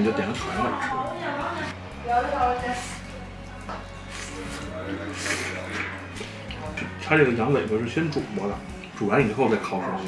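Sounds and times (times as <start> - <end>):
faint background voices: 0.0 - 7.6.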